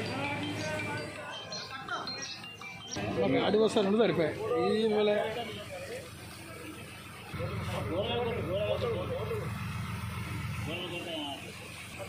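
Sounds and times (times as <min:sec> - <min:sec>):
people talking: 0:00.0 - 0:12.0
engine pulsing hum: 0:04.4 - 0:12.0.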